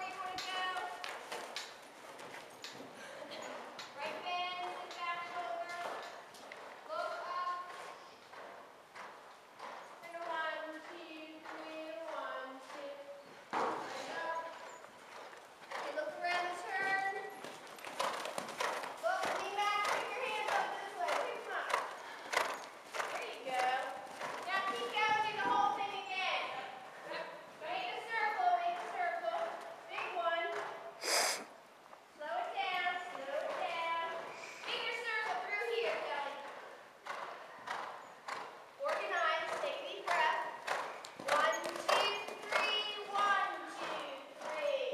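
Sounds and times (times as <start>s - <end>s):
horse hooves cantering: 0.0s - 31.0s, 31.9s - 44.9s.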